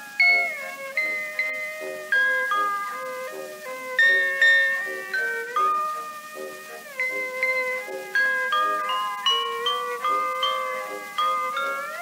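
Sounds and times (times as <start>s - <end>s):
small orchestra playing: 0.0s - 12.0s
bright bell notes: 0.2s - 3.2s, 7.0s - 12.0s.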